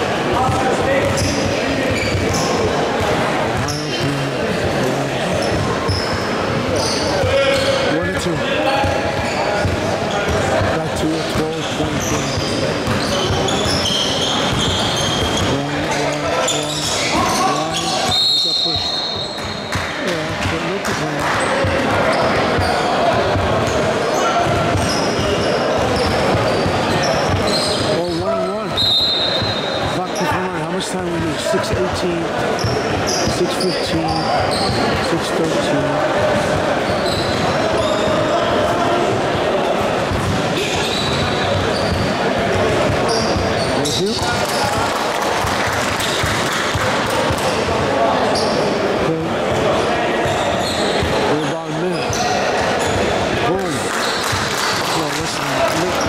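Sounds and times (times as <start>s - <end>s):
voices echoing in hall: 0.0s - 56.0s.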